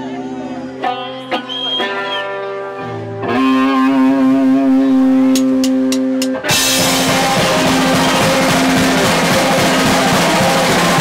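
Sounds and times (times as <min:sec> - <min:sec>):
bass guitar: 0:00.0 - 0:11.0
electric guitars: 0:00.0 - 0:11.0
drum kit with crashing cymbals: 0:05.4 - 0:11.0.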